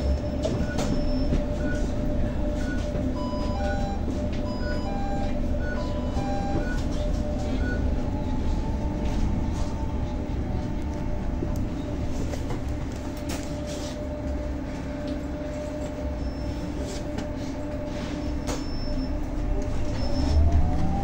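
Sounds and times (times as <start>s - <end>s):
road and body rumble: 0.0s - 21.0s.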